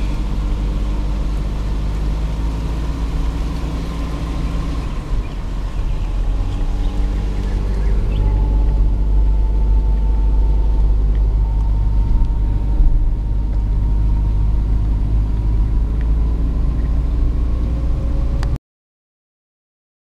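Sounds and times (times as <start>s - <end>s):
car interior road rumble: 0.0s - 18.6s.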